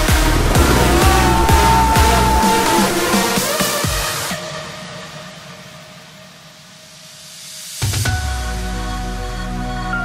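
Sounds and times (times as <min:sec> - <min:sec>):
speedboat engine drone: 0:00.0 - 0:03.7
rushing water noise: 0:00.0 - 0:04.4.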